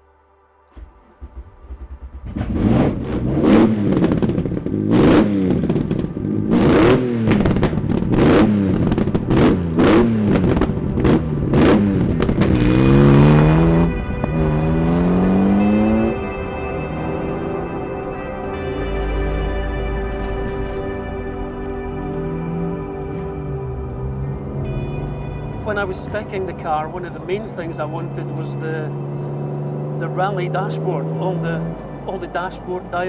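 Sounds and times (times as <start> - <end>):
car engine revving: 0.7 - 33.0.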